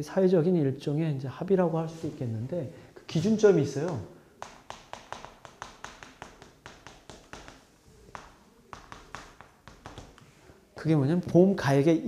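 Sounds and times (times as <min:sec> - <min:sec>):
chalk writing on chalkboard: 0:03.2 - 0:10.4.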